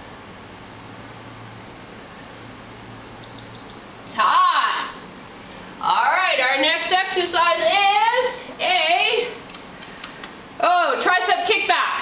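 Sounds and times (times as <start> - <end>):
low room hum: 0.0 - 12.0
short high timer beeps: 3.2 - 3.8.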